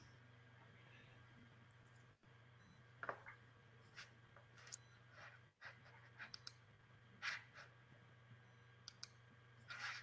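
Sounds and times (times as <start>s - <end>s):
faint clicks: 8.8s - 9.2s.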